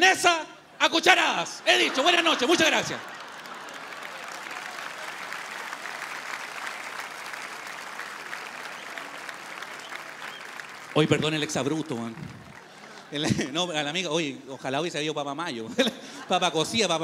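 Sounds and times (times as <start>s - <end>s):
crowd cheering: 1.4s - 13.4s
audience applauding: 1.7s - 13.6s.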